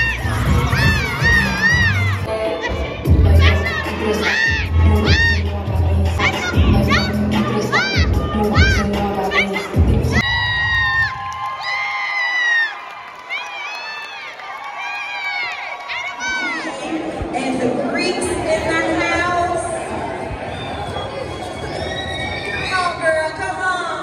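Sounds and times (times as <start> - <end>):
crowd cheering and screaming: 0.0 - 5.5, 6.2 - 17.2, 18.7 - 23.2
bass-heavy dance music: 0.0 - 10.2.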